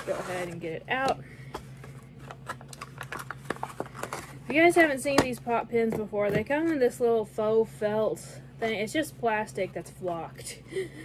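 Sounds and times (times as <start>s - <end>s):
packaging clicks scrapes and rustles: 1.7s - 4.6s.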